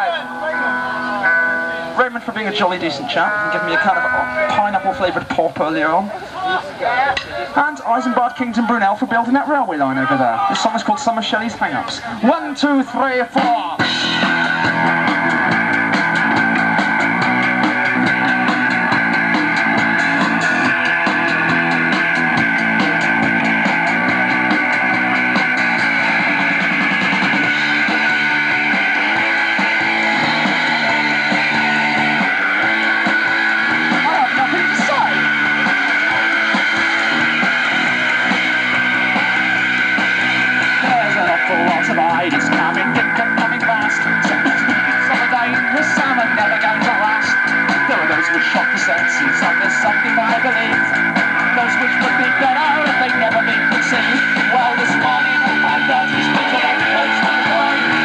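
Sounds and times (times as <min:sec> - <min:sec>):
live rock band playing: 0:00.0 - 0:06.6, 0:07.6 - 0:58.0
cymbals ticking: 0:13.8 - 0:58.0.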